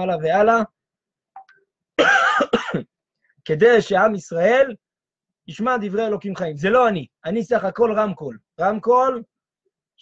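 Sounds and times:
man coughing: 2.0s - 3.0s.

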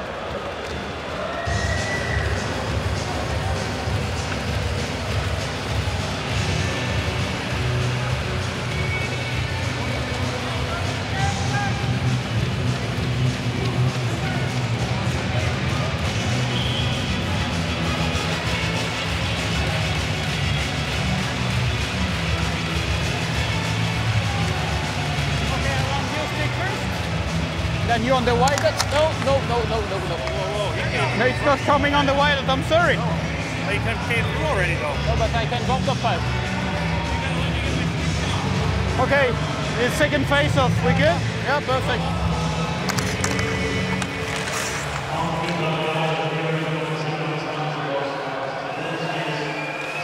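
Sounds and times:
crowd noise: 0.0s - 50.0s
music over public address system: 1.5s - 50.0s.

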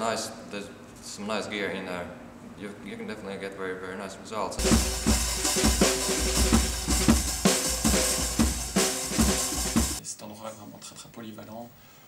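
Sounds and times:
cymbals ringing: 4.6s - 10.0s
kick and snare drums: 4.6s - 10.0s.

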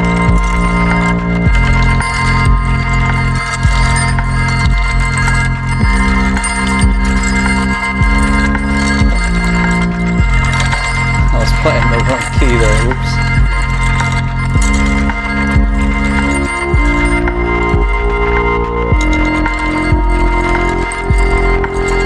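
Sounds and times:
shimmering looped high tones: 0.0s - 22.0s
synthesizer bass chords: 0.0s - 22.0s.

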